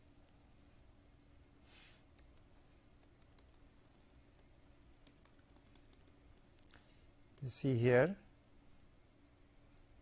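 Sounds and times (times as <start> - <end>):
stylus tapping on pen tablet: 2.1 - 6.7.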